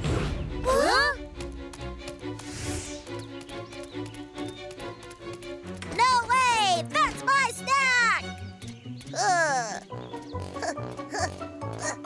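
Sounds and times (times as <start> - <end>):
cartoon background music: 0.0 - 12.0
cartoon patter footsteps: 0.7 - 9.4, 10.0 - 12.0.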